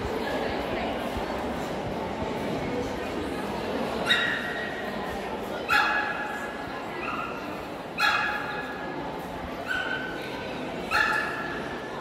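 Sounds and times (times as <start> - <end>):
murmur of a crowd: 0.0 - 12.0.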